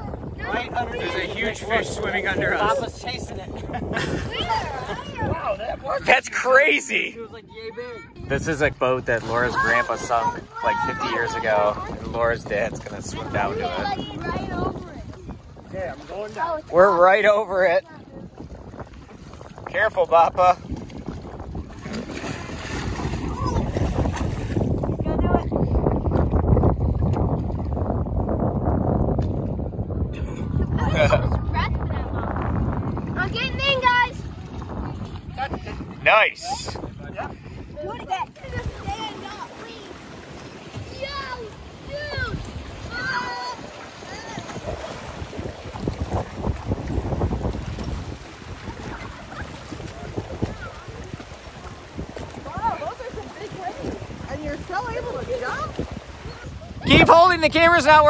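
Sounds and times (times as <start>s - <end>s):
water splashing and lapping: 0.0s - 58.0s
wind buffeting microphone: 0.0s - 58.0s
children shouting: 40.9s - 44.5s.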